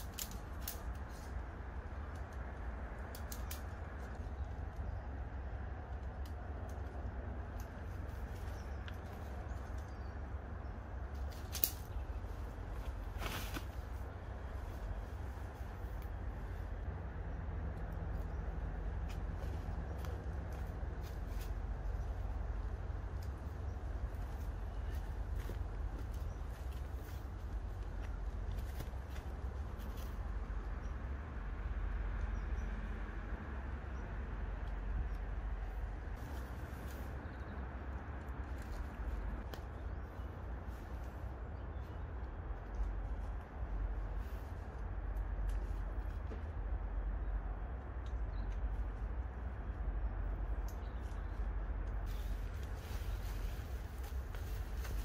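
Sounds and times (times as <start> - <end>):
tent pole sections clicking: 0.0 - 1.4, 2.0 - 4.9, 5.8 - 10.0, 11.1 - 14.2
steady low rumble: 0.0 - 55.0
tent fabric being handled: 12.3 - 16.0, 52.0 - 55.0.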